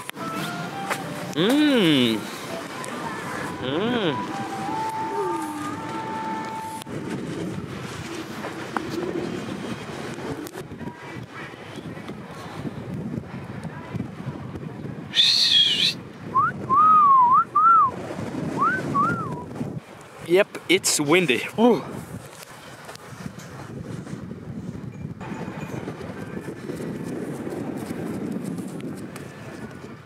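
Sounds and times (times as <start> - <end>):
person calling: 0.4 - 6.8, 15.1 - 16.0
wind buffeting microphone: 2.4 - 20.8, 21.4 - 30.0
person whistling: 3.6 - 6.8, 15.1 - 17.9, 18.6 - 19.5.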